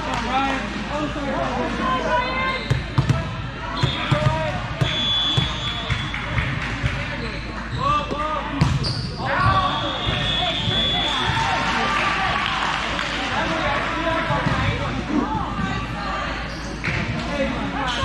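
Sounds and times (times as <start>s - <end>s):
voices calling in echoing gym: 0.0s - 18.0s.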